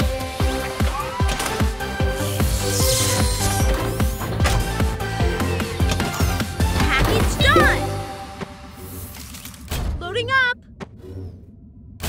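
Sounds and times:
rising warbling tone: 0:07.6 - 0:08.7.

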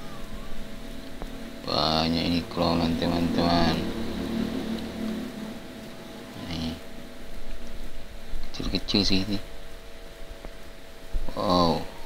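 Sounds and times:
faint machine hum: 0:00.0 - 0:12.0.

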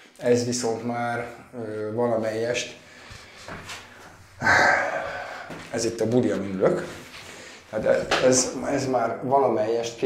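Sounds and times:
man exhaling loudly: 0:04.4 - 0:05.7.

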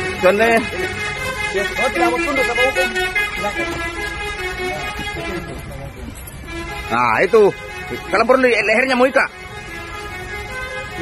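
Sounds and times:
men's raised voices: 0:00.0 - 0:06.2.

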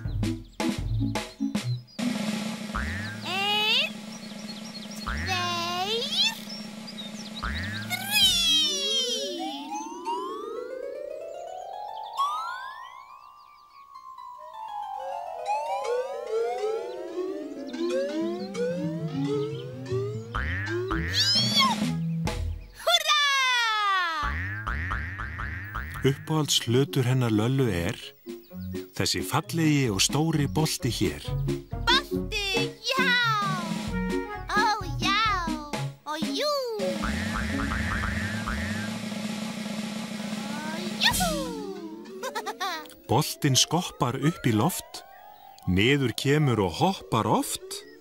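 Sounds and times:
springy boings: 0:01.5 - 0:04.2, 0:05.0 - 0:08.4, 0:18.0 - 0:22.0, 0:24.2 - 0:26.2, 0:36.8 - 0:43.0
falling cartoon tone: 0:07.7 - 0:10.2, 0:12.2 - 0:12.9, 0:15.5 - 0:22.0, 0:36.3 - 0:39.0, 0:40.3 - 0:42.9
quick rising chirps: 0:12.0 - 0:14.4, 0:37.0 - 0:43.1
springy bouncing sound effects: 0:17.7 - 0:22.0, 0:35.5 - 0:39.0, 0:40.4 - 0:43.0.

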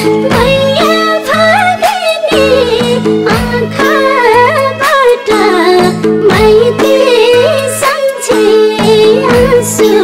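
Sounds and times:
instrumental accompaniment: 0:00.0 - 0:10.0
woman singing ornamented melody: 0:00.0 - 0:10.0.

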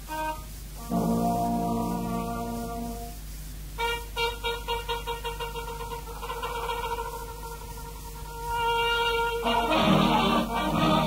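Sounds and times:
steady low hum: 0:00.0 - 0:11.0
trumpet playing short notes: 0:00.0 - 0:11.0.

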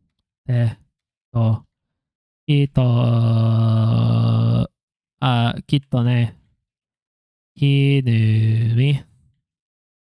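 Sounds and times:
man holding a long vocal tone: 0:02.6 - 0:04.7.

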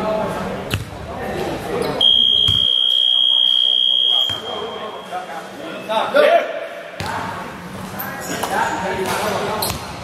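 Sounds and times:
basketball buzzer: 0:02.0 - 0:04.5.

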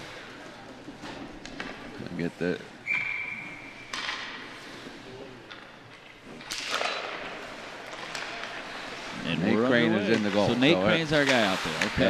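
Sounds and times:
skate blades scraping ice: 0:10.2 - 0:12.0.

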